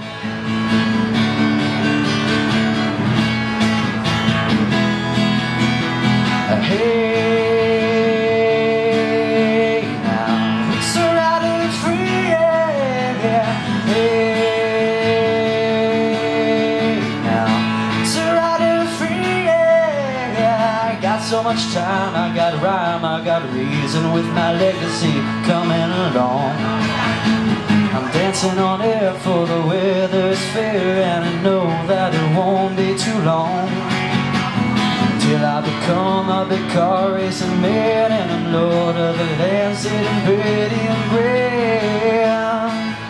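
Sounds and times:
strummed acoustic guitar: 0:00.0 - 0:43.0.

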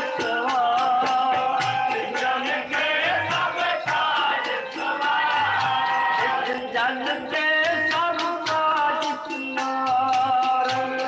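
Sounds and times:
harmonium chords: 0:00.0 - 0:11.0
men singing together: 0:00.0 - 0:11.0
tabla beat: 0:00.0 - 0:11.0.

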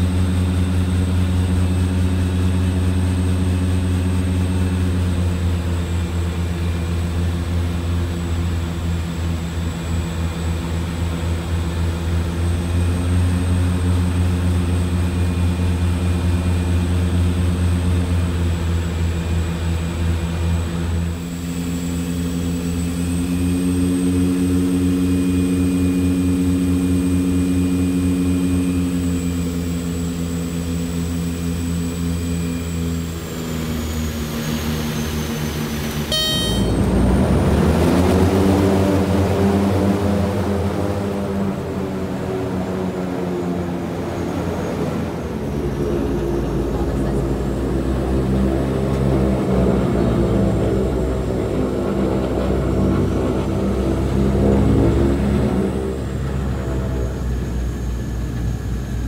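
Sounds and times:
turboprop engine drone: 0:00.0 - 0:59.0.

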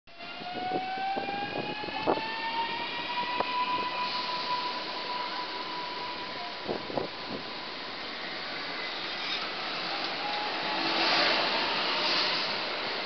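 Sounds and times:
electric train drive whine: 0:00.2 - 0:13.0.

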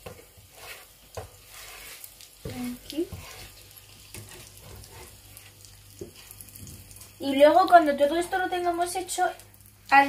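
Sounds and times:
cheese sizzling in oil: 0:00.0 - 0:10.0.

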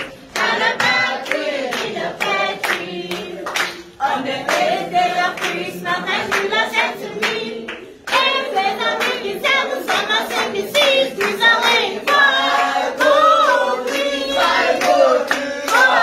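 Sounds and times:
group singing: 0:00.0 - 0:16.0
rhythmic hand clapping: 0:00.0 - 0:16.0.

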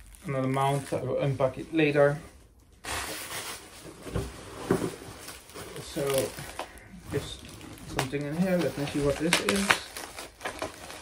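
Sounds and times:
cardboard and paper rustling: 0:02.9 - 0:11.0.

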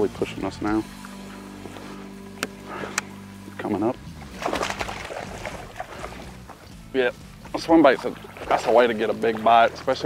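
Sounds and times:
electric trolling motor hum: 0:00.0 - 0:10.0.

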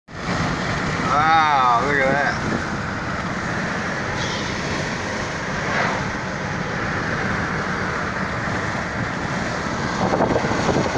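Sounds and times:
car road noise: 0:00.1 - 0:10.9
wind buffeting microphone: 0:02.2 - 0:10.9.

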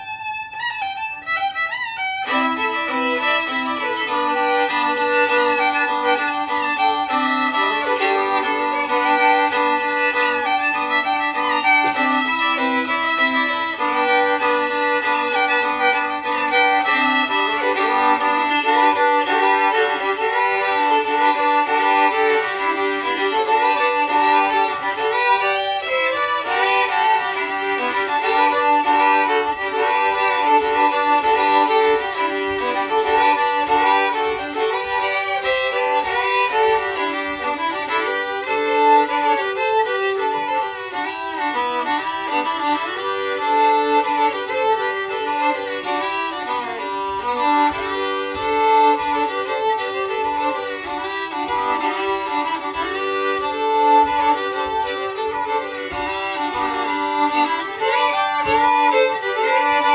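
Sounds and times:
two fiddles playing: 0:00.0 - 0:59.9.

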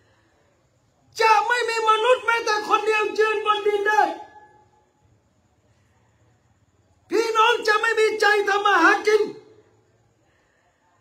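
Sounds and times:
man's voice: 0:01.1 - 0:04.5, 0:07.1 - 0:09.6.

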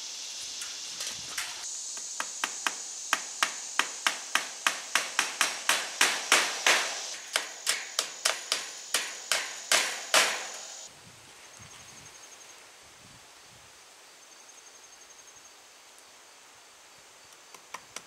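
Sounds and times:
high insect drone: 0:00.0 - 0:10.9
hammer striking wood: 0:02.2 - 0:10.8.

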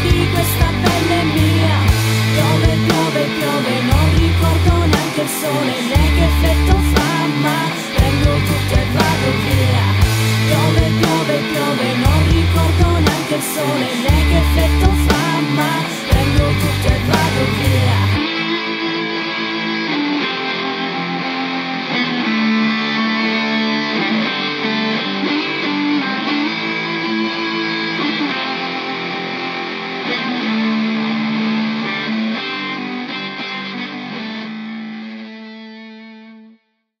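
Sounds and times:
heavy rock band playing: 0:00.0 - 0:33.1
guitar playing held chords: 0:00.0 - 0:36.6.

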